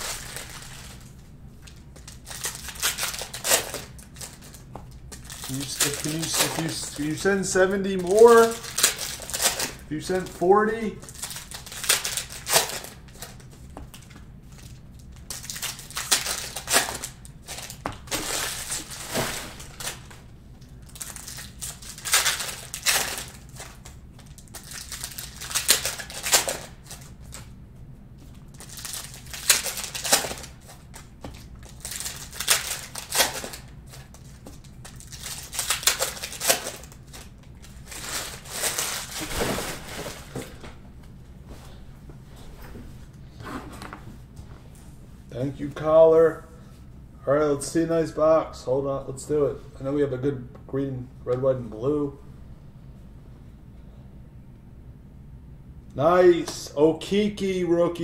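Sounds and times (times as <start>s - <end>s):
cellophane wrappers tearing and crinkling: 0.0s - 1.1s, 2.0s - 20.2s, 20.8s - 27.5s, 28.5s - 40.3s.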